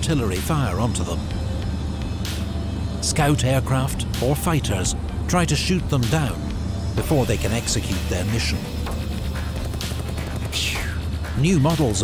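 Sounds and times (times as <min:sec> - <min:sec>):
low drone background music: 0:00.0 - 0:12.0.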